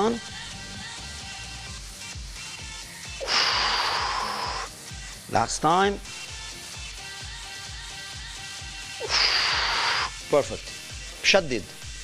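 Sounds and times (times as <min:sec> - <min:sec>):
workout music with steady beat: 0:00.0 - 0:12.0
loud hissing breath out: 0:03.2 - 0:04.8, 0:09.0 - 0:10.2.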